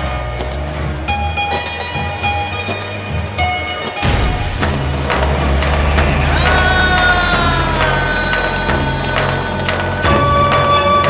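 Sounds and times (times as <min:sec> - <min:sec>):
percussion beats: 0:00.0 - 0:11.0
low sustained drone: 0:04.0 - 0:11.0.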